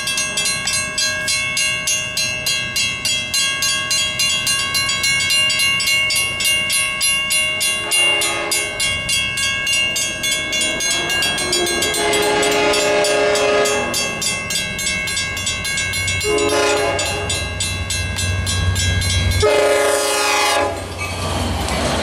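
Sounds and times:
railroad crossing bell ringing: 0.0 - 21.3
locomotive horn blasts: 7.8 - 8.8, 10.8 - 14.1, 16.2 - 17.4, 19.4 - 20.9.

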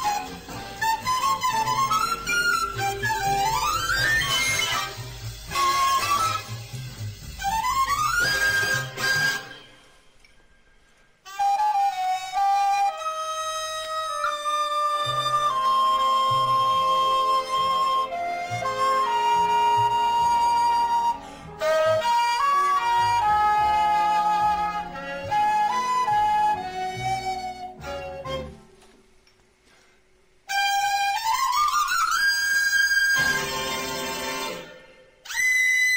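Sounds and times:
recorder playing jazz melody: 0.0 - 9.9, 11.2 - 28.8, 30.5 - 35.9.

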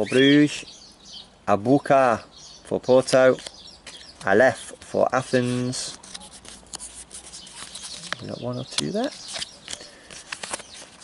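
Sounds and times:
paper stickers rustling: 3.1 - 11.0.

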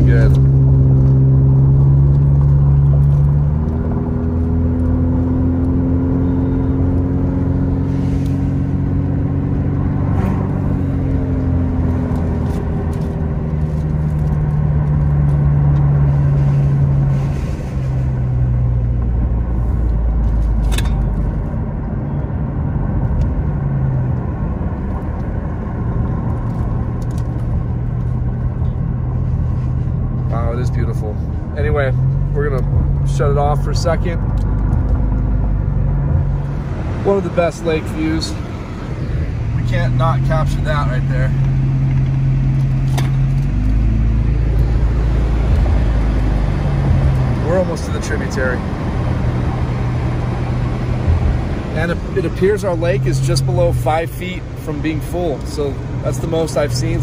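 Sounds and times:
car engine hum and road rumble: 0.0 - 57.0.

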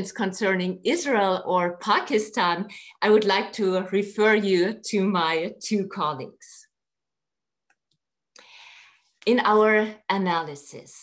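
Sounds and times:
person drawing breath: 8.4 - 9.2.

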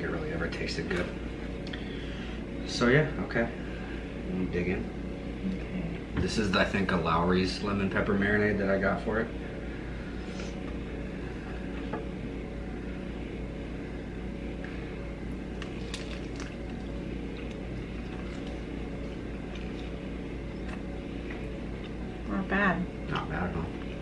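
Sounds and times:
low room hum: 0.0 - 24.0
faint chewing: 15.5 - 22.1.

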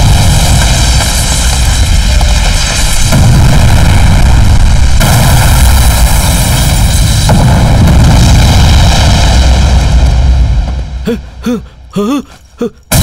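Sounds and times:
explosion roar with low rumble: 0.0 - 11.9.

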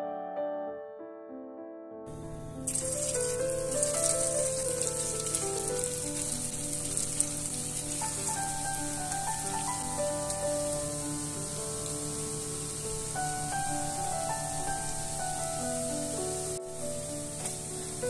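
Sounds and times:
soft piano background music: 0.0 - 18.0
potato balls deep-frying in oil: 2.6 - 18.0.

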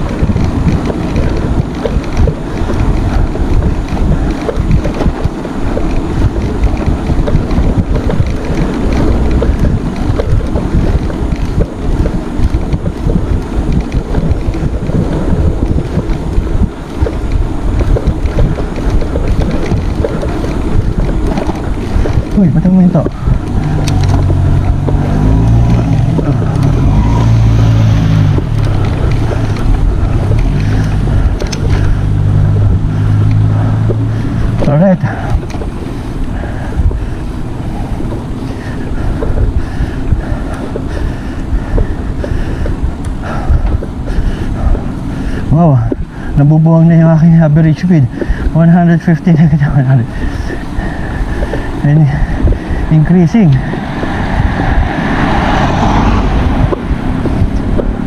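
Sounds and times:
low steady hum: 0.0 - 58.0
wind buffeting microphone: 0.0 - 58.0.

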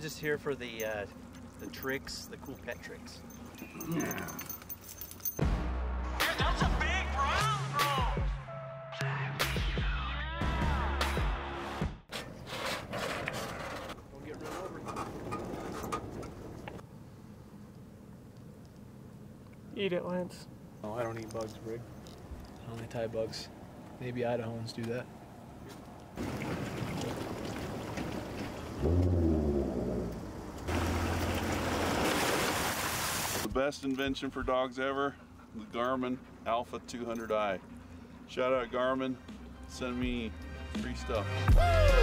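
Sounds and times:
water splashing: 25.9 - 29.5, 30.6 - 33.5
vehicle engine: 28.0 - 32.5.

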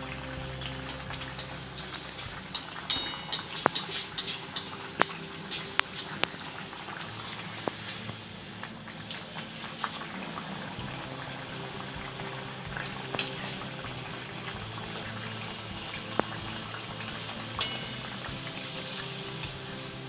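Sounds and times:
oil sizzling and bubbling: 0.0 - 20.0.

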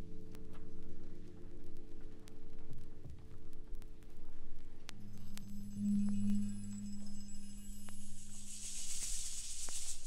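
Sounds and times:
high hissing texture: 8.1 - 10.0.

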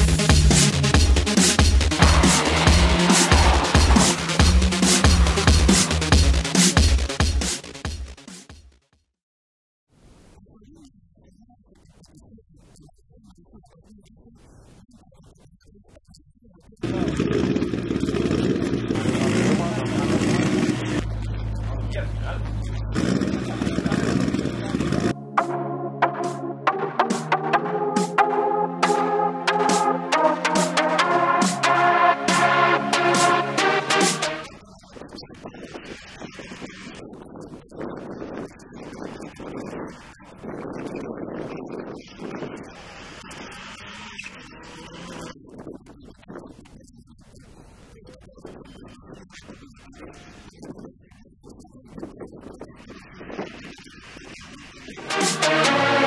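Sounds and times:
car engine idling: 0.1 - 7.5, 16.8 - 25.1.

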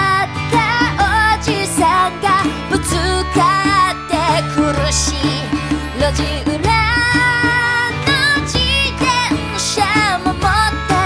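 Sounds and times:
band accompaniment: 0.0 - 11.0
woman singing: 0.0 - 11.0.

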